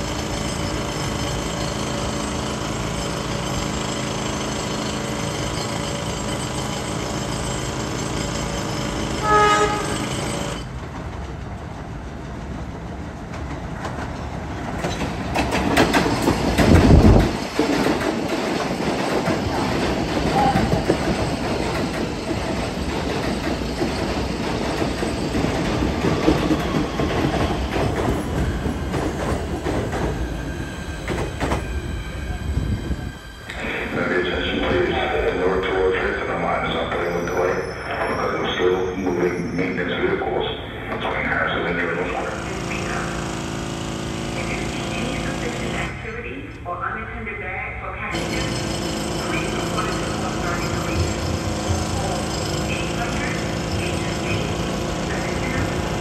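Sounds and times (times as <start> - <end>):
train wheel and motor noise: 0.0 - 56.0
train horn blast: 9.2 - 10.1.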